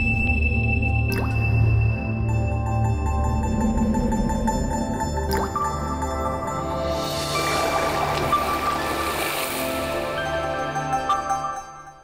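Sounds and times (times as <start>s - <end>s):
water drop plink: 1.0s - 1.8s, 5.3s - 5.7s.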